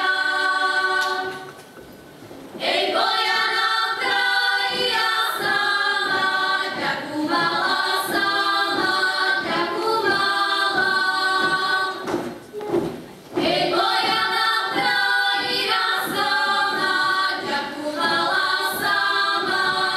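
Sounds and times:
women singing a cappella: 0.0s - 1.7s, 2.5s - 12.4s, 13.3s - 19.9s.

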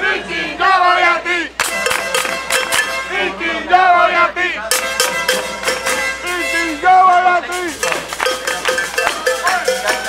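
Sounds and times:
metallic percussion strikes ringing: 1.6s - 3.1s, 4.7s - 10.0s.

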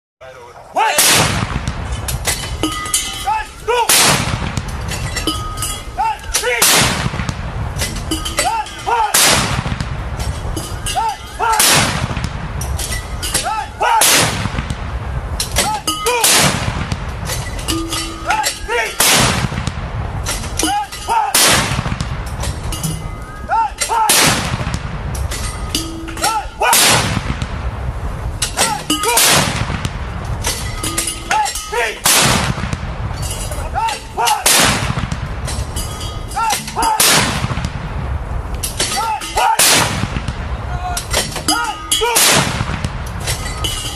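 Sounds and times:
artillery guns firing booms: 1.0s - 2.5s, 3.9s - 5.2s, 6.4s - 7.9s, 9.1s - 10.4s, 11.5s - 12.9s, 14.0s - 17.5s, 19.0s - 20.6s, 21.3s - 22.7s, 24.1s - 25.6s, 26.7s - 27.9s, 29.1s - 30.5s, 32.0s - 33.2s, 34.4s - 35.6s, 37.0s - 38.3s, 39.6s - 40.6s, 42.2s - 43.4s.

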